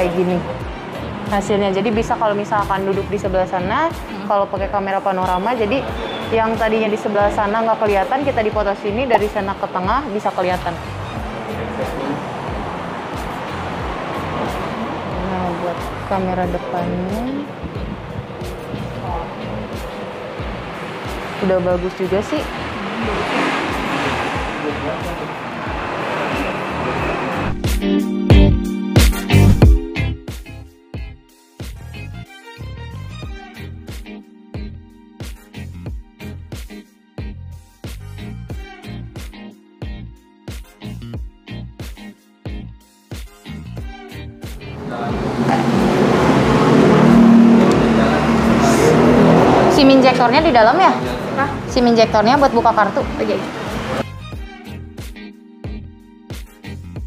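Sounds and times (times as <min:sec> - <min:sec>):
loud vehicle engine: 0:00.0 - 0:03.4, 0:10.5 - 0:27.6, 0:44.3 - 0:54.0
road traffic rushing: 0:00.0 - 0:30.7, 0:43.6 - 0:54.9
background music: 0:00.0 - 0:57.0.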